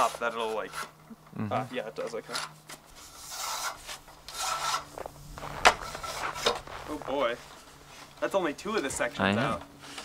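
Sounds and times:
metal tubes scraping: 0.0s - 1.0s, 2.1s - 8.2s.

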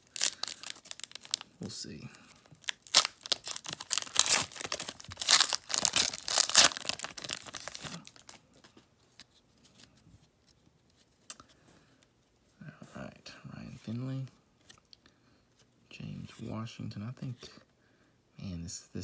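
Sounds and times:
wrapper tearing and crinkling: 0.0s - 1.5s, 2.6s - 8.4s.

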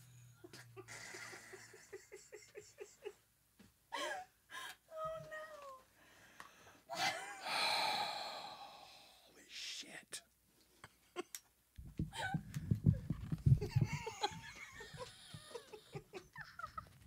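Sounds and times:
breathy gasp: 6.0s - 9.3s
person moaning: 6.9s - 9.3s.

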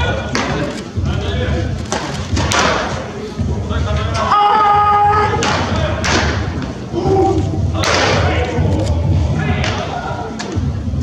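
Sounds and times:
voices: 0.0s - 11.0s
baseballs smacking into mitts: 1.9s - 3.0s.

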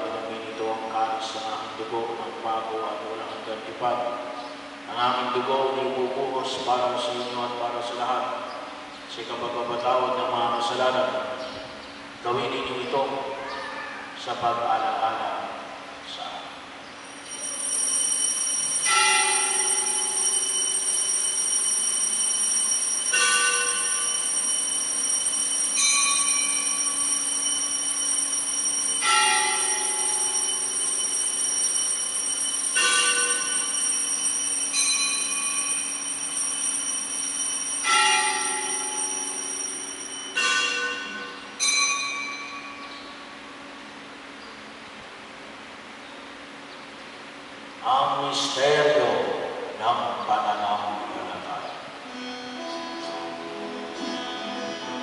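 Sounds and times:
altar bells ringing: 17.0s - 43.6s, 52.0s - 55.0s.

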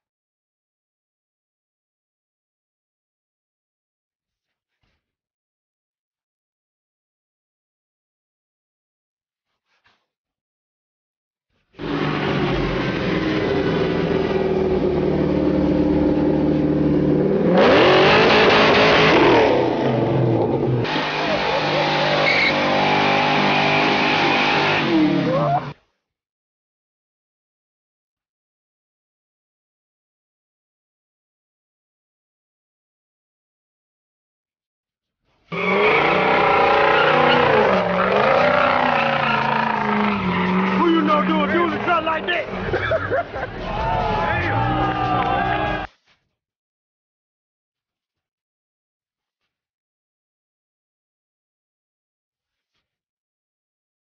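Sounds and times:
car engine revving: 11.8s - 25.7s, 35.5s - 45.9s
tyres spinning in burnout: 11.8s - 25.8s, 35.5s - 45.9s
tyres squealing: 21.1s - 25.7s, 35.5s - 43.0s
people shouting: 35.8s - 42.7s, 43.4s - 45.9s.

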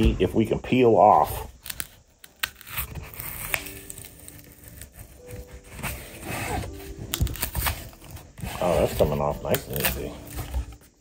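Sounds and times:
cardboard tearing and scraping: 1.1s - 11.0s.

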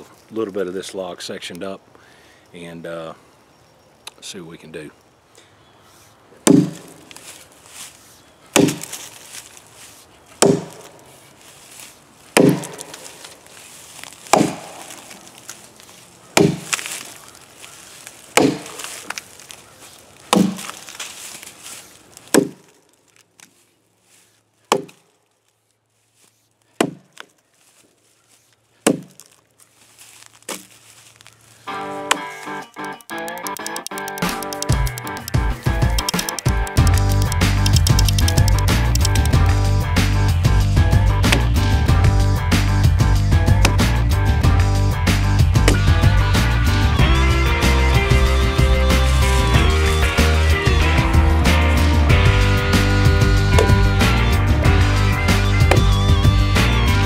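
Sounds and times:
axe chopping into log: 6.4s - 7.0s, 8.5s - 9.1s, 10.4s - 10.9s, 12.4s - 13.1s, 14.0s - 15.0s, 16.4s - 17.0s, 18.3s - 19.2s, 20.3s - 20.8s, 22.3s - 22.7s, 24.7s - 25.0s, 26.8s - 27.3s, 28.8s - 29.3s, 43.6s - 43.9s, 45.6s - 45.9s, 53.6s - 53.9s, 55.6s - 56.0s
music with a beat: 32.6s - 57.0s.

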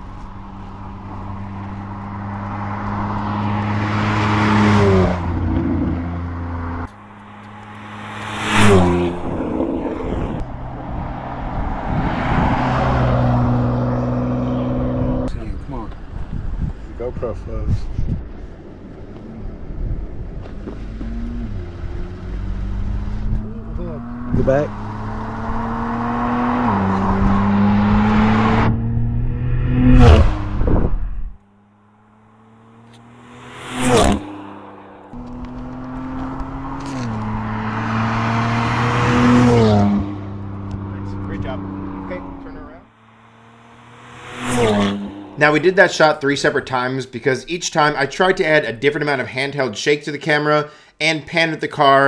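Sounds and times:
car engine accelerating through gears: 0.5s - 15.3s, 19.1s - 31.3s, 32.2s - 45.7s.

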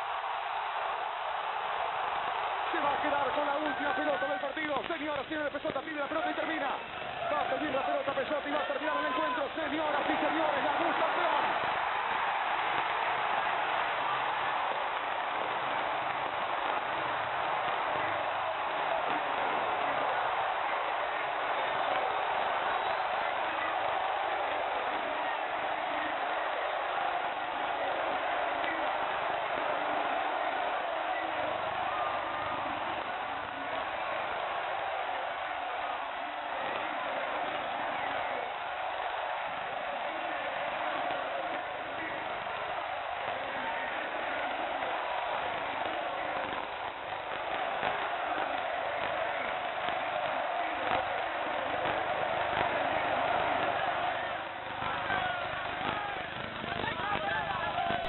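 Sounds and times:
stadium crowd cheering: 0.0s - 58.0s.

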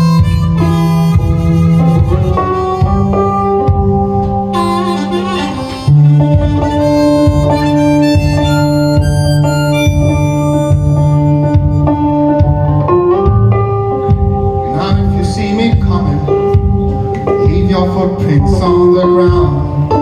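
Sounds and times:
harmonica long notes: 0.0s - 14.7s
resonator guitar: 0.0s - 20.0s.

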